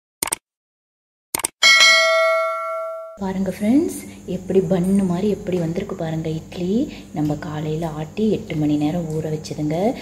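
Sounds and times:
bell chime: 0:01.6 - 0:03.2.

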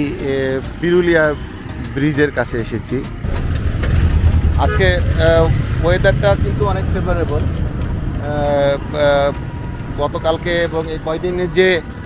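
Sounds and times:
low traffic rumble: 0:00.0 - 0:12.0
vehicle horn blasts: 0:04.5 - 0:05.6.

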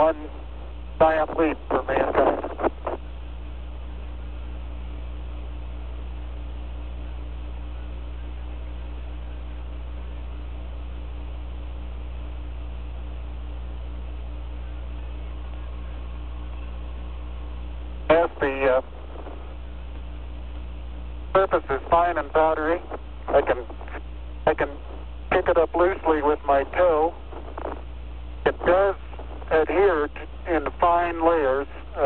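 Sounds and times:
faint steady tone: 0:00.0 - 0:32.0
radio hiss and hum: 0:00.0 - 0:32.0.

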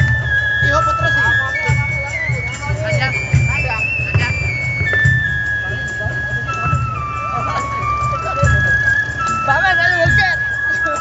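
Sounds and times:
low drum beats: 0:00.0 - 0:11.0
wind instrument melody: 0:00.0 - 0:11.0.

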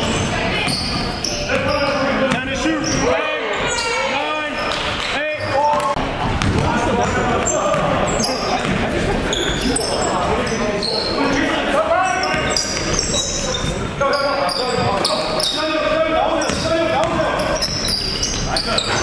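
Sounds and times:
players' voices echoing: 0:00.0 - 0:19.0
sneakers squeaking: 0:00.0 - 0:19.0.

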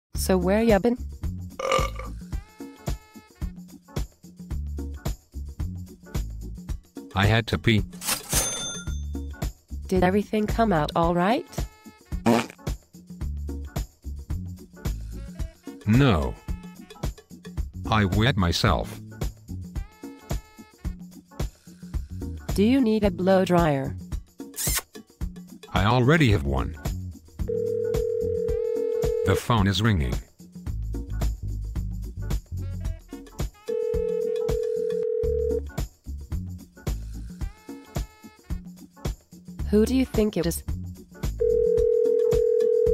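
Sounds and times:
background music with low bass: 0:00.2 - 0:08.0, 0:08.9 - 0:42.9
electronic telephone ring tone: 0:27.5 - 0:29.5, 0:33.7 - 0:35.6, 0:41.4 - 0:42.9.

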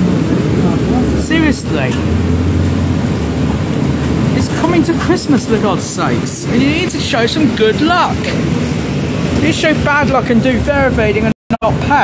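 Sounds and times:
bus engine rumble: 0:00.0 - 0:12.0
road noise: 0:00.0 - 0:12.0.

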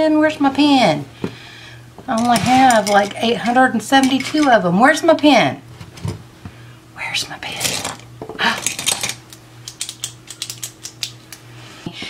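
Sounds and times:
plastic pens clicking and clattering: 0:07.6 - 0:11.2.

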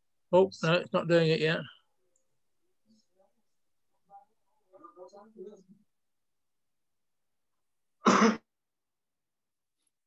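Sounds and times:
person coughing: 0:08.0 - 0:08.5.

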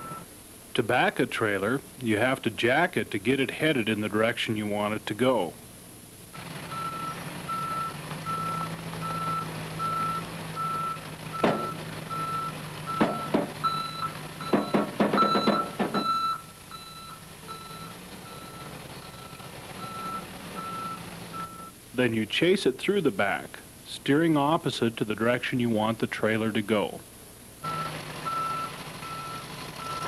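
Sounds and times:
truck back-up alarm beeping: 0:00.0 - 0:00.3, 0:06.7 - 0:21.8, 0:27.6 - 0:30.0
truck engine running low: 0:06.3 - 0:21.7, 0:27.6 - 0:30.0
sharp clunks and knocks: 0:11.4 - 0:11.8, 0:12.9 - 0:13.6, 0:14.4 - 0:16.2.

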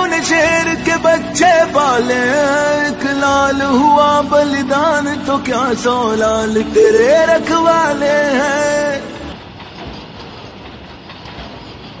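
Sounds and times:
freight train rolling past: 0:00.0 - 0:12.0
wheel clacks over rail joints: 0:00.0 - 0:12.0.

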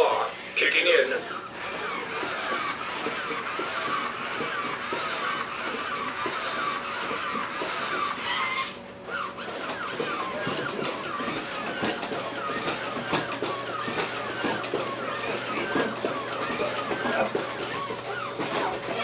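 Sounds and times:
robot motors whining: 0:00.8 - 0:19.0.

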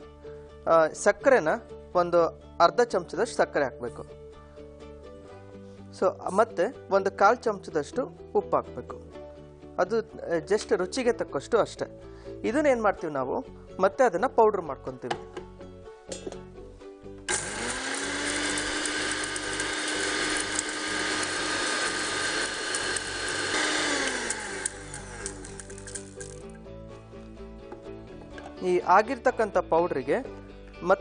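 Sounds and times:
mixer grinder motor grinding: 0:17.3 - 0:26.5.

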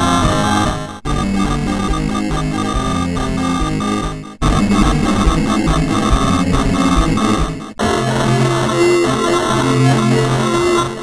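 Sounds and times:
distorted cartoon music and effects: 0:00.0 - 0:08.4
low droning tones: 0:01.9 - 0:08.0.

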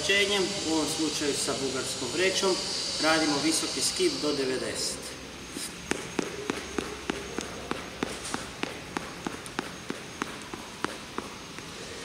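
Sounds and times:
footfalls on rubber floor: 0:05.9 - 0:11.7.

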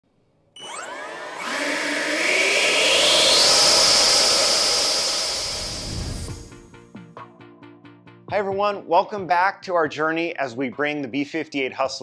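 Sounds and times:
electric ducted fans whining: 0:00.6 - 0:06.6.

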